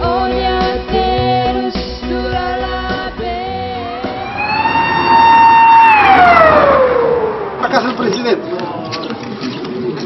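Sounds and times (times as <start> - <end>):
background music: 0.0 - 6.6
siren wailing: 3.9 - 7.9.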